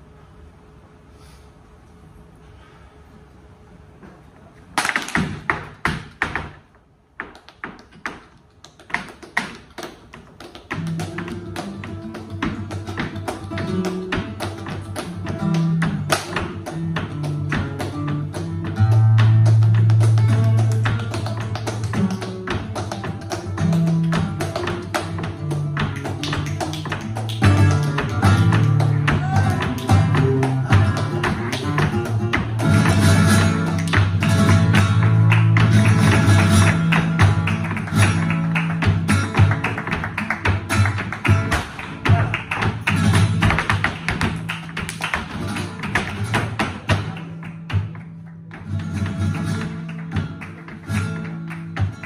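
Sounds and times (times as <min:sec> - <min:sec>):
flamenco footwork strikes: 0:04.7 - 0:52.0
hand claps: 0:04.8 - 0:52.0
shoe taps on wooden stage: 0:04.9 - 0:37.5
guitar playing: 0:10.8 - 0:42.2.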